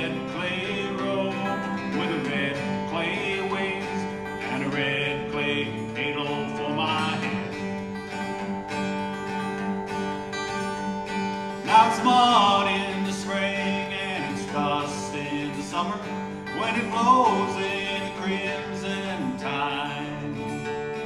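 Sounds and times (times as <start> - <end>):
acoustic guitar picking and strumming: 0.0 - 21.0.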